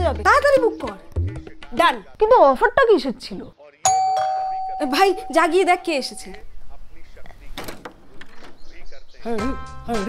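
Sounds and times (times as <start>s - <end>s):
electronic doorbell chime: 3.9s - 5.8s.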